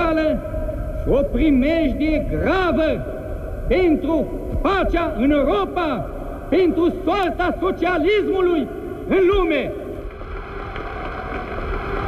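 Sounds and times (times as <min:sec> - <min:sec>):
steady rushing recording noise: 0:00.0 - 0:12.0.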